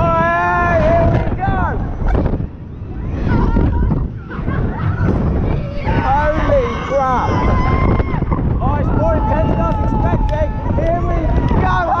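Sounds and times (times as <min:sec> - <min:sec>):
air buffeting microphone: 0:00.0 - 0:12.0.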